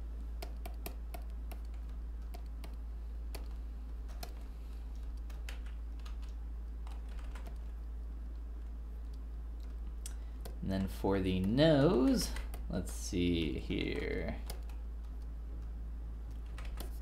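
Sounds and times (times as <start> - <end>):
steady low hum: 0.0 - 17.0
keyboard keys clicking: 0.4 - 9.8, 16.3 - 17.0.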